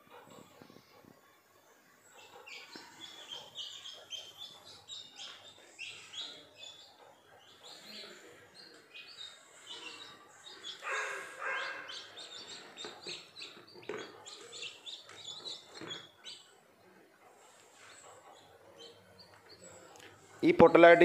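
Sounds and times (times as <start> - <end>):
chicks peeping: 2.0 - 16.7, 17.3 - 21.0.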